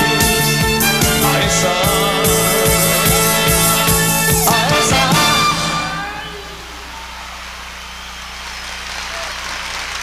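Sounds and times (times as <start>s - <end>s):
sound system hum: 0.0s - 9.8s
audience applauding: 6.2s - 10.0s.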